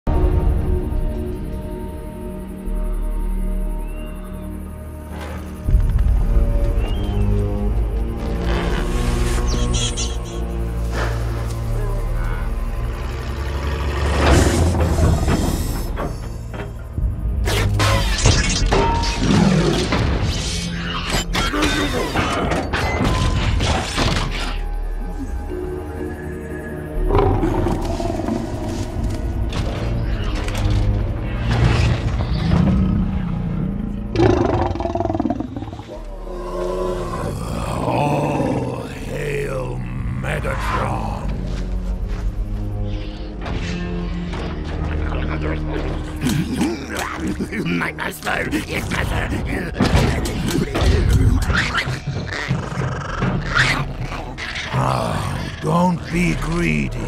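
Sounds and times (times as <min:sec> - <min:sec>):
film score low drone: 0:00.1 - 0:57.0.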